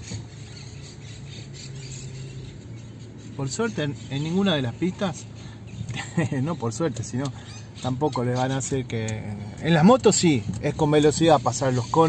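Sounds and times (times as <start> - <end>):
faint road noise: 0.0 - 12.0
low engine hum: 0.0 - 12.0.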